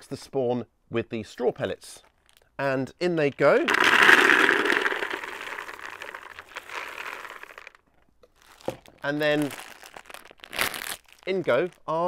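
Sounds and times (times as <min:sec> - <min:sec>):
pellets pouring into plastic pot: 0:03.6 - 0:07.8, 0:08.4 - 0:10.9.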